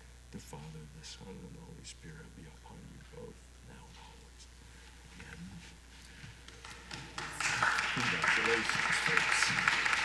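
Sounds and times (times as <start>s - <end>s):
congregation applauding: 6.5s - 10.0s.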